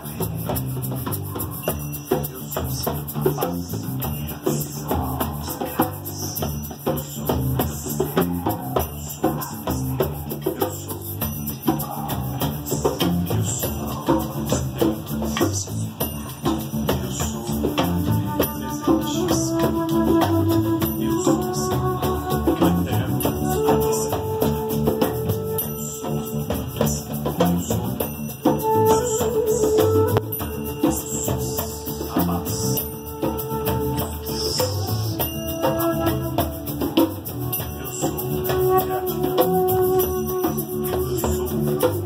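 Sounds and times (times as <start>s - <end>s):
hand percussion: 0.0s - 42.0s
live band music: 0.0s - 42.0s
shaker rhythm: 0.0s - 42.0s.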